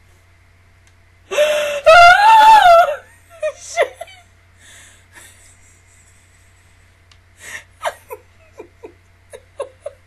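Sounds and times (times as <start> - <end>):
woman laughing breathlessly: 1.3 - 1.9, 3.3 - 10.0.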